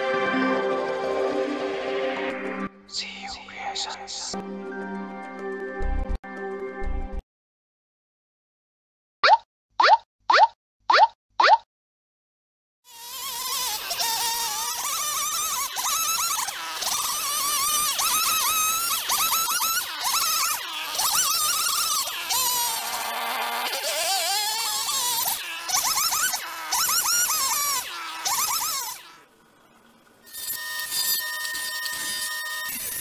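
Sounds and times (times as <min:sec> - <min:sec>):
chainsaw cutting wood: 0:12.9 - 0:29.3, 0:30.2 - 0:33.0
jointer motor whining: 0:12.9 - 0:33.0.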